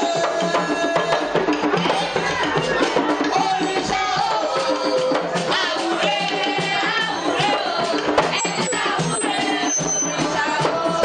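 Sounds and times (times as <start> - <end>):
man singing into a microphone: 0.0 - 1.6, 3.3 - 5.5
hand drums playing: 0.0 - 11.0.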